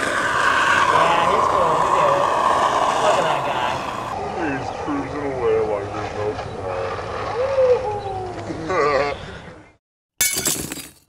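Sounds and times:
outdoor noise: 0.0 - 11.0
glass shards tinkling: 10.2 - 11.0
glass shattering: 10.2 - 11.0.

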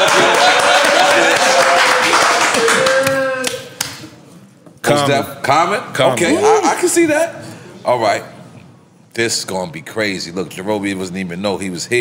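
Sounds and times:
hands clapping: 0.0 - 4.2.

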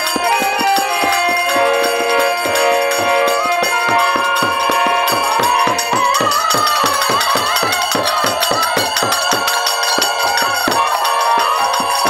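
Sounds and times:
harmonium held tones: 0.0 - 12.0
high wavering melody: 0.0 - 12.0
jingling hand cymbals: 0.0 - 12.0.

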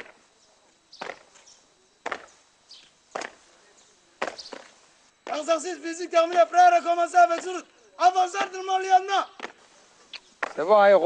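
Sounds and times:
boots stamping on dirt: 0.0 - 0.2, 1.0 - 2.4, 3.1 - 3.5, 4.2 - 5.6, 6.2 - 10.7.

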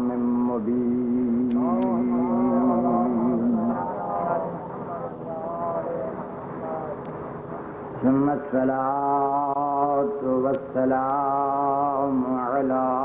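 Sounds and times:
man chanting: 0.0 - 7.0, 8.0 - 13.0
faint vocal sounds: 0.0 - 13.0.

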